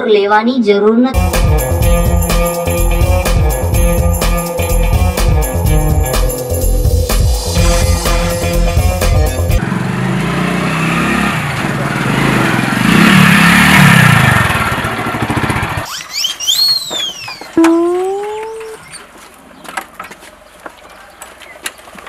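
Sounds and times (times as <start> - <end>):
rising tone: 1.2 - 9.6
motorcycle passing: 7.4 - 16.0
high sweeping whistle tones: 15.9 - 17.6.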